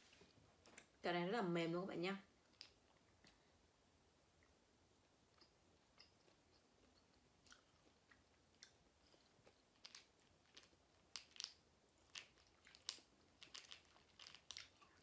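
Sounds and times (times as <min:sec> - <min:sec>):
chewing candy: 0:05.3 - 0:15.0.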